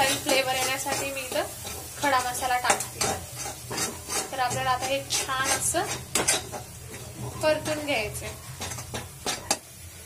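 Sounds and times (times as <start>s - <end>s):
spatula scraping metal pan: 0.0s - 9.8s
low sizzle: 0.0s - 10.0s.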